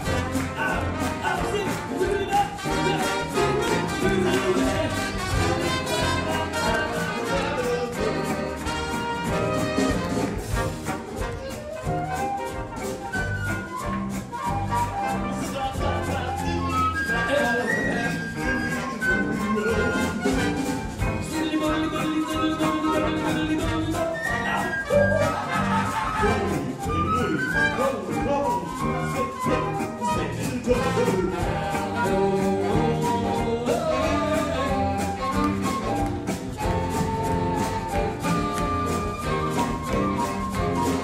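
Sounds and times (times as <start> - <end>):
drum kit beat: 0.0 - 14.4, 15.2 - 27.4, 28.0 - 41.0
jazz big band playing: 0.0 - 41.0.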